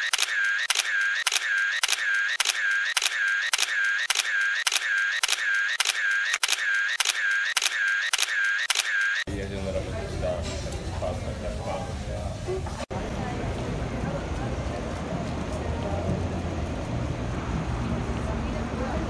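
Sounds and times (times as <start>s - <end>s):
camera shutter clicks: 0.0s - 9.2s
murmur of cafe voices: 9.3s - 19.0s.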